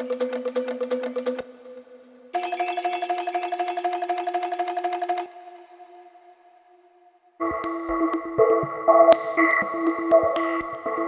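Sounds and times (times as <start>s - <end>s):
bell-like synthesizer fluttering: 0.0s - 1.4s, 2.4s - 6.4s.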